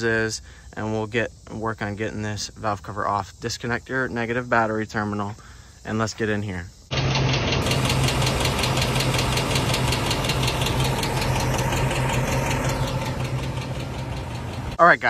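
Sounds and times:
engine running with rapid ticking: 6.9 - 14.8.

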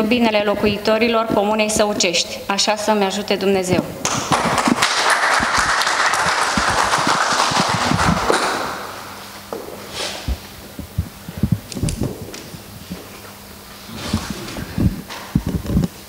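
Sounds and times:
audience applauding: 4.0 - 9.2
microphones being handled: 9.2 - 16.0.

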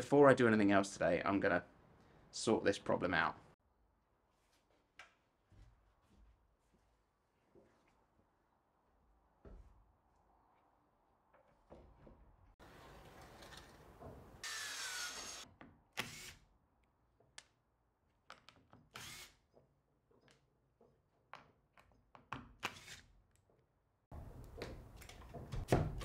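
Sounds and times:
cordless drill driving screws: 14.4 - 15.4, 18.9 - 19.4.

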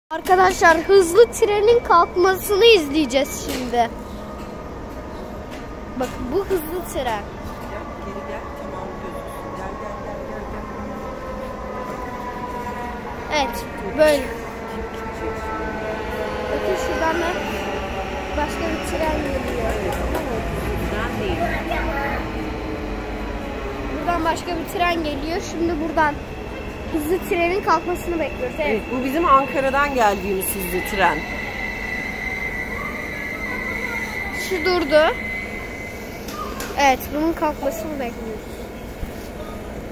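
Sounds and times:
electric train humming: 0.1 - 39.9.

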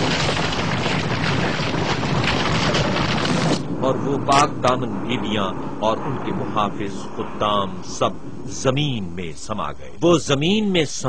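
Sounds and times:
ground breaking open rumble: 0.0 - 10.7.

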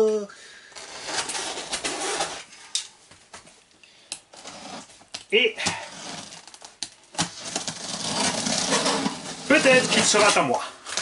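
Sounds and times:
box cutter slicing cardboard: 0.8 - 2.5, 5.6 - 6.5, 7.2 - 10.4.

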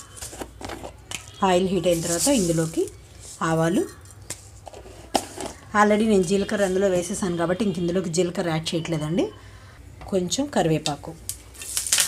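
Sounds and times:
person speaking: 1.4 - 4.1.

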